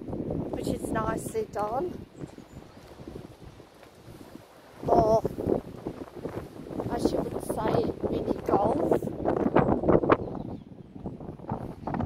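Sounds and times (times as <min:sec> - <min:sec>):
footsteps outdoors: 0:00.0 - 0:08.6
wind rumbling on microphone: 0:00.0 - 0:12.0
person speaking: 0:00.6 - 0:02.0, 0:04.8 - 0:05.4, 0:06.9 - 0:09.1.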